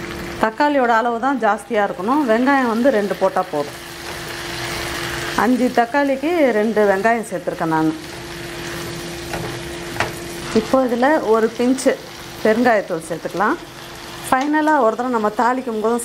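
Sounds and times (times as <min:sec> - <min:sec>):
food sizzling in hot oil: 0:00.0 - 0:16.0
spatula stirring: 0:08.0 - 0:10.9.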